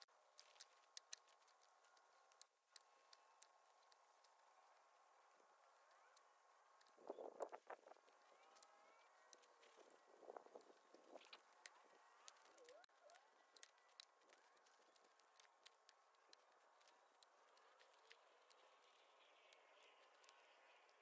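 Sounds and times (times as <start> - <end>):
faint clicks: 0.0 - 21.0.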